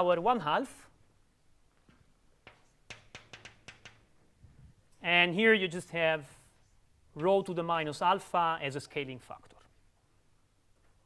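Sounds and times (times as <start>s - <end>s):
chalk clicking on blackboard: 2.4s - 4.1s.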